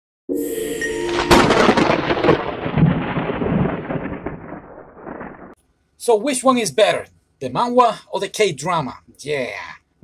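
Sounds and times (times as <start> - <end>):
thunder rumble: 0.8 - 5.6.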